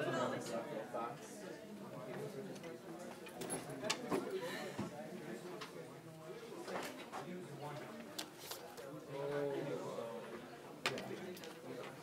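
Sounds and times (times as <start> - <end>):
low murmuring voices: 0.0 - 12.0.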